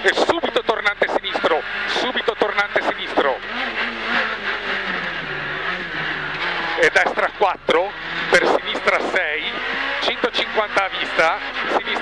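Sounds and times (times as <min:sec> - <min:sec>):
car engine from inside cabin: 0:00.0 - 0:12.0.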